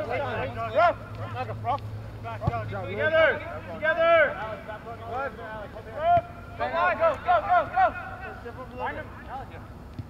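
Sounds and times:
man shouting: 6.0 - 8.4.

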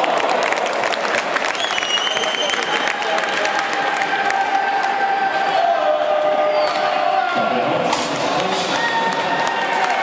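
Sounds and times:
crowd applauding: 0.0 - 5.4, 8.2 - 10.0
thin high whistle tone: 1.6 - 2.8.

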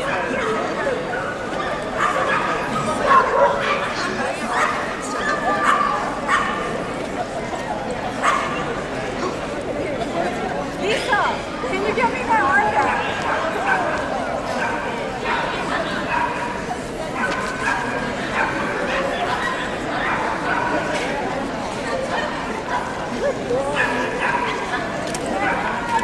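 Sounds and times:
crowd chatter: 0.0 - 26.0
dog barking: 1.6 - 4.8, 5.6 - 6.7, 8.2 - 8.6, 12.8 - 16.5, 17.2 - 21.0, 23.8 - 24.6.

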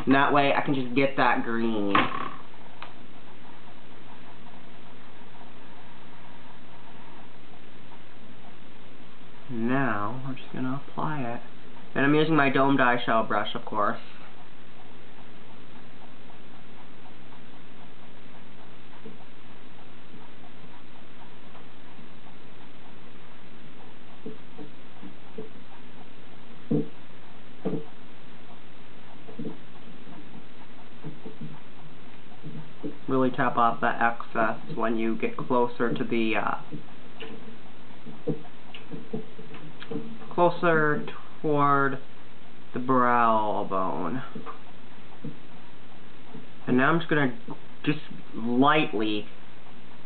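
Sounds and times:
background hiss: 0.0 - 50.0
low even hum: 0.0 - 50.0
soft low bumps: 0.0 - 50.0.

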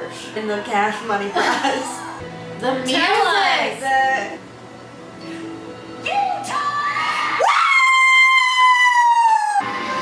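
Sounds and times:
woman screaming in excitement: 7.4 - 9.6.

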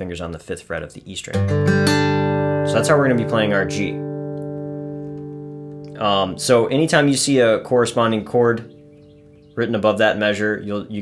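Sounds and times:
acoustic guitar chord ringing: 1.4 - 9.9.

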